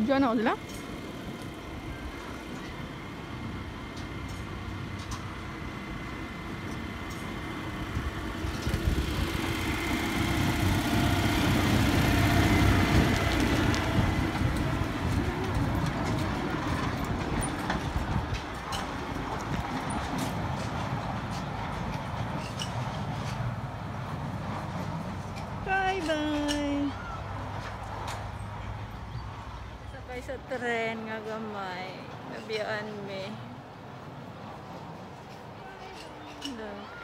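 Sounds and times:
small train rolling past: 0.0 - 37.0.

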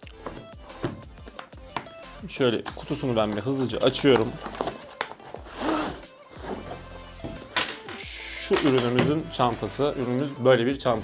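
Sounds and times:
quiet background music: 0.0 - 11.0
cardboard and fabric rustling: 2.8 - 7.5.

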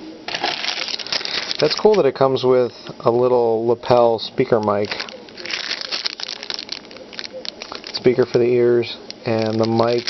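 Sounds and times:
plastic bag crinkling: 0.3 - 2.2, 4.7 - 10.0.

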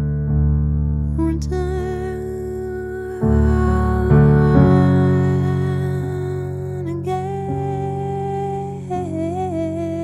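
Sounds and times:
dull sustained piano: 0.0 - 10.0
woman singing: 1.1 - 10.0.

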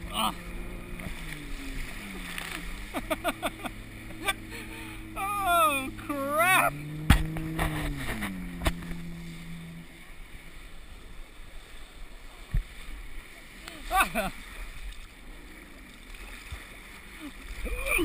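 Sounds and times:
person yelling: 0.0 - 0.4, 5.1 - 6.8, 13.8 - 14.3, 17.7 - 18.0
boat engine droning: 0.0 - 18.0
water splashing: 0.0 - 18.0.

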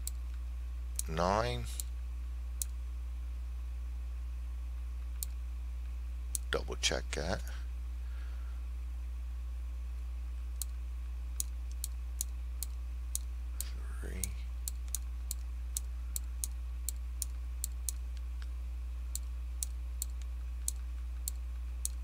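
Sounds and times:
low electrical hum: 0.0 - 22.0
computer mouse clicking: 19.2 - 22.0.

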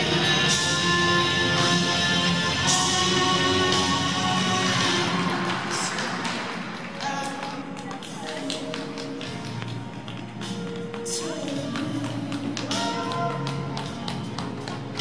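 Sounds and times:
flamenco-style music: 0.0 - 15.0.

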